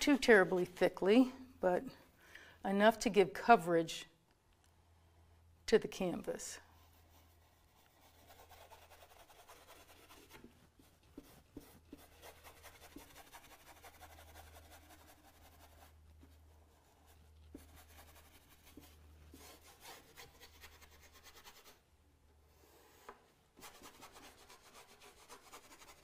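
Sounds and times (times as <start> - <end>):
brush scratching on canvas: 0.0 - 1.0, 6.6 - 21.8, 23.6 - 26.0.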